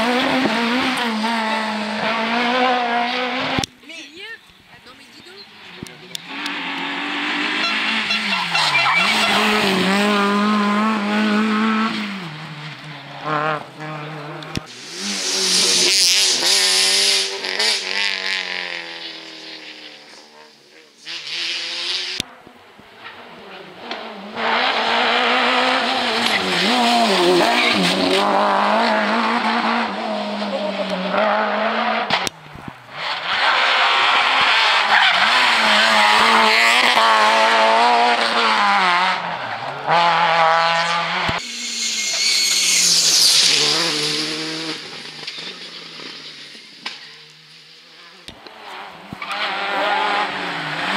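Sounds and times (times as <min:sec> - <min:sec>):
rally car engines revving: 0:00.0 - 0:03.8, 0:04.8 - 0:50.9
tyres squealing: 0:07.6 - 0:10.0.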